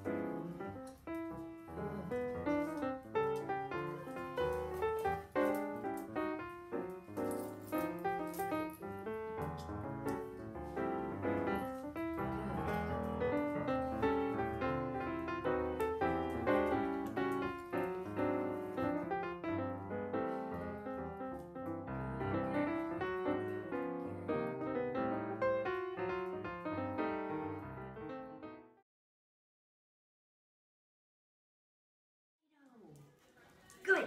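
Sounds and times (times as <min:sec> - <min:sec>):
background piano music: 0:00.0 - 0:28.8.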